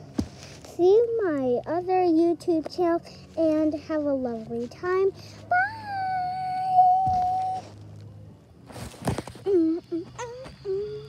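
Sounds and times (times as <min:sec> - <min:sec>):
child saying bye: 0:02.8 - 0:07.6.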